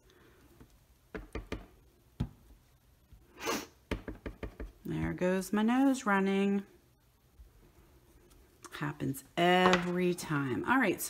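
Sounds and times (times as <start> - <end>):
stamp knocking on table: 9.6 - 9.9.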